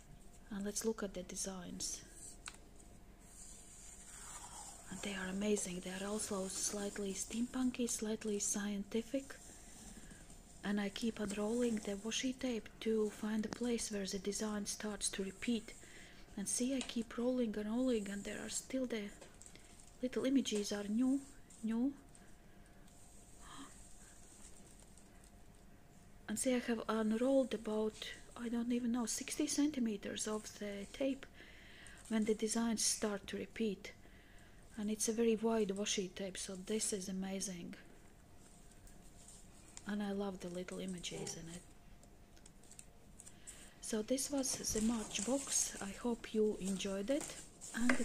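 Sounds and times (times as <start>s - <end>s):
person speaking: 4.8s - 9.5s, 10.6s - 15.8s, 39.8s - 41.7s, 43.8s - 48.0s.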